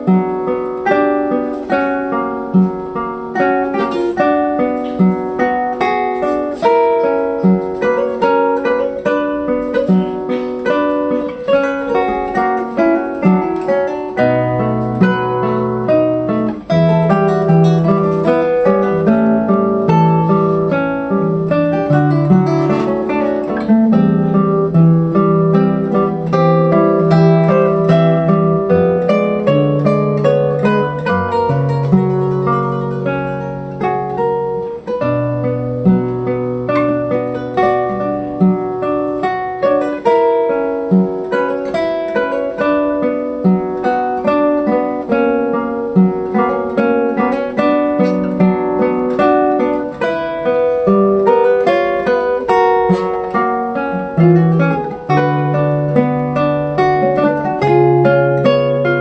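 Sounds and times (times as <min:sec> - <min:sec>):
classical guitar duet: 0:00.0 - 0:59.0.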